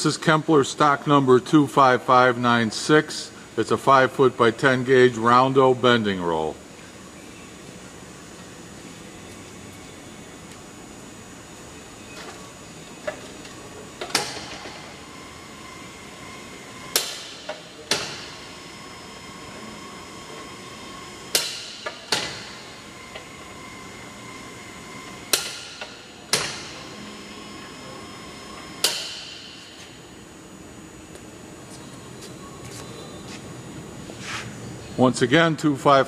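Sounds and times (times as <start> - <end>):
steady background hum: 0.0 - 36.0.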